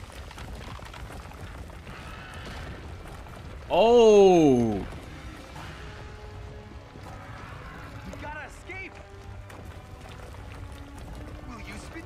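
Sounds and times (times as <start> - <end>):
faint crackles: 0.0 - 12.0.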